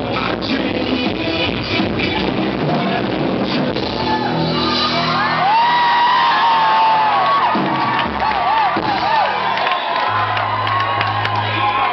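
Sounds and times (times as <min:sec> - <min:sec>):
audience whooping and shouting: 0:03.8 - 0:11.9.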